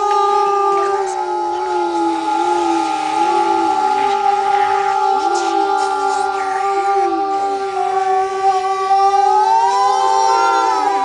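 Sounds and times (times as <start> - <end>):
voices holding wordless drone: 0.0 - 11.0.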